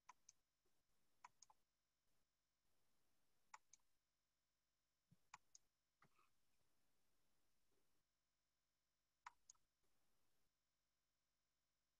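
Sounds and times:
computer mouse clicks: 0:00.0 - 0:00.4, 0:01.2 - 0:01.6, 0:03.5 - 0:03.9, 0:09.2 - 0:09.7.

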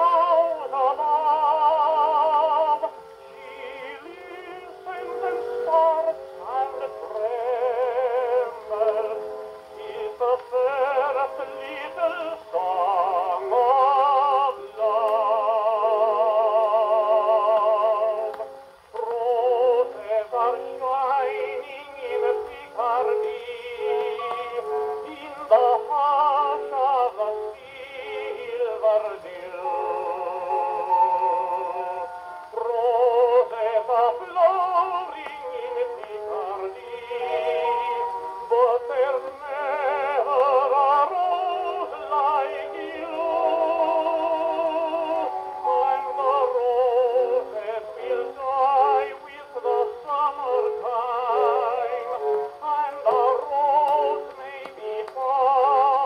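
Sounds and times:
tenor song on gramophone: 0:00.0 - 0:56.0.

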